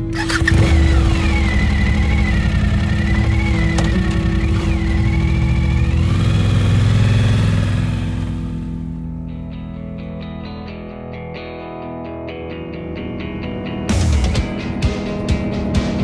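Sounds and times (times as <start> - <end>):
motorcycle engine revving: 0.0 - 9.0
background music: 0.0 - 16.0.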